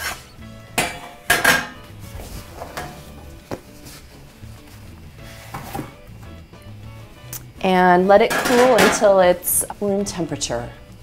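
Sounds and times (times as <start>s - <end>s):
faint background music: 0.0s - 11.0s
metal pan knocking on steel: 0.8s - 1.8s, 8.3s - 9.2s.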